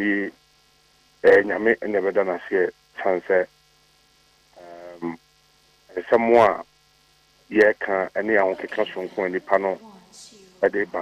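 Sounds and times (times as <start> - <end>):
speech over a telephone line: 0.0 - 0.4, 1.2 - 3.5, 4.6 - 5.2, 5.9 - 6.7, 7.5 - 11.0
steady electrical hum: 0.0 - 11.0.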